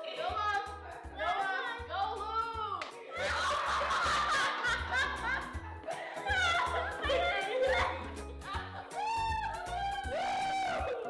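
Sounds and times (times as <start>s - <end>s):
background music with low beat: 0.0s - 11.0s
children laughing and shrieking: 3.2s - 11.0s.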